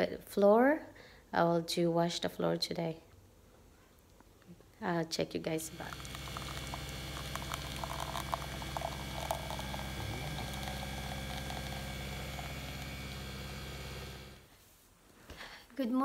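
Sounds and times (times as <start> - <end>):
coffee machine motor hum: 5.5 - 14.5
coffee streaming into a mug: 5.6 - 14.5.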